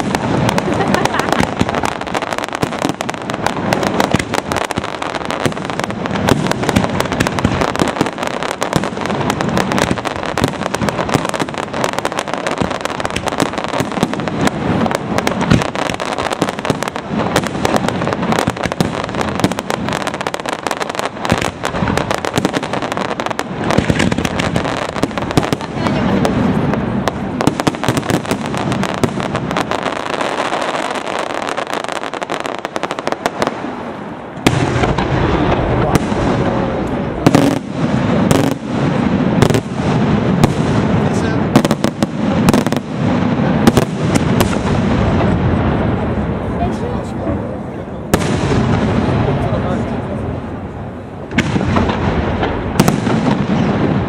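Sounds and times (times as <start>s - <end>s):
deep fireworks booms: 0.0s - 54.0s
fireworks crackling pops and bangs: 0.0s - 54.0s.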